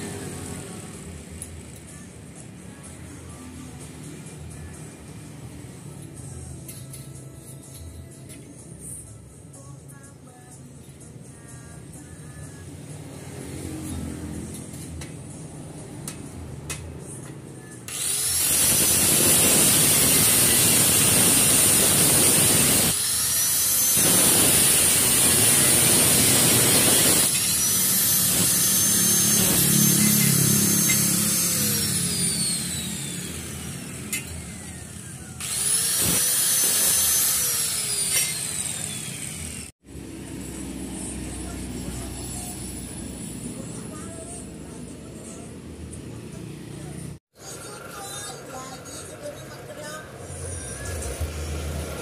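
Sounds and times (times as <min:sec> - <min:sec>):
grinder motor whine: 0:17.9 - 0:43.4
angle grinder grinding metal: 0:17.9 - 0:44.5.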